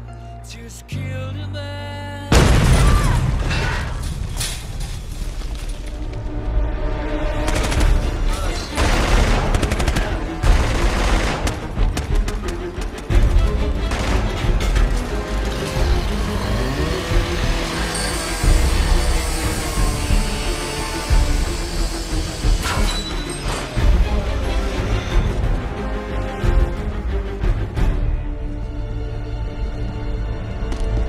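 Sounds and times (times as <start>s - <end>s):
film soundtrack music: 0.0s - 31.0s
heavy booms: 2.3s - 4.4s.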